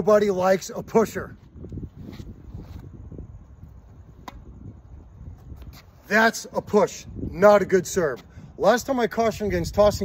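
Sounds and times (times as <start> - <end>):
wind rumble on microphone: 0.0 - 10.0
tennis ball tap: 4.2 - 4.5.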